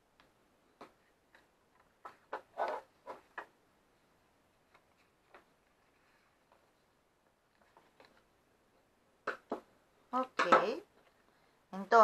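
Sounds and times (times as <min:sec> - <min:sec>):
paper scraping on table: 0:02.3 - 0:03.3.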